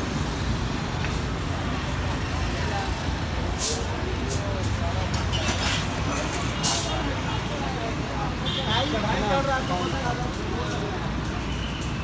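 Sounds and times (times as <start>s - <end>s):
crowd chatter: 1.2s - 12.0s.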